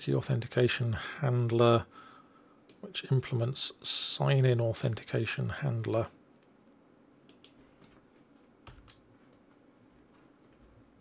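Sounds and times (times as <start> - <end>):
computer keyboard typing clicks: 7.3 - 7.6.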